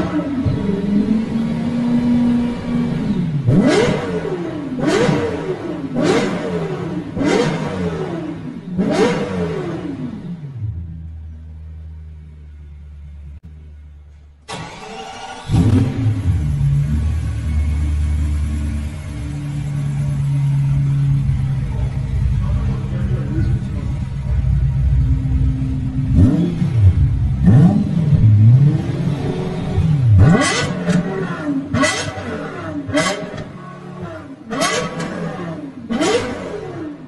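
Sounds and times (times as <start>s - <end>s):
car engine revving and idling: 0.0s - 37.0s.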